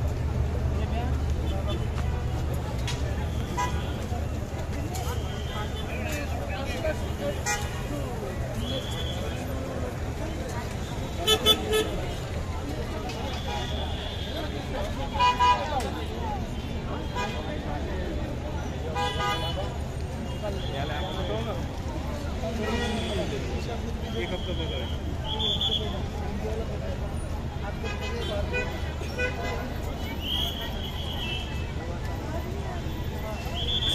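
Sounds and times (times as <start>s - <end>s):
crowd chatter: 0.0s - 33.9s
traffic rumble: 0.0s - 33.9s
vehicle horn: 3.4s - 4.0s, 19.0s - 19.6s.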